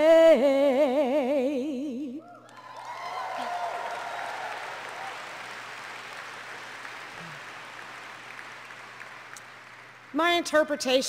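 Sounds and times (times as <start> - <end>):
audience applauding: 2.4 - 10.2.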